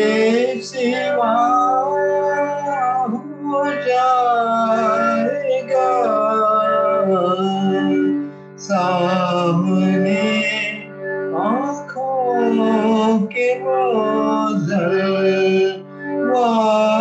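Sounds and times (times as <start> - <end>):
man singing devotional song: 0.0 - 17.0.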